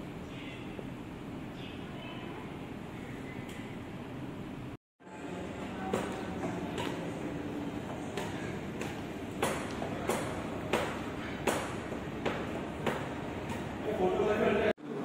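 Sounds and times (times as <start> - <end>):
indoor hall background noise: 0.0 - 15.0.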